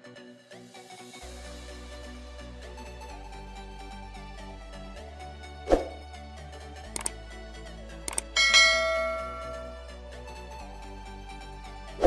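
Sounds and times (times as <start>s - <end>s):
quiet background music: 2.4s - 12.0s
mouse clicks: 7.0s - 7.2s, 8.1s - 8.4s
bell chime: 8.1s - 10.0s.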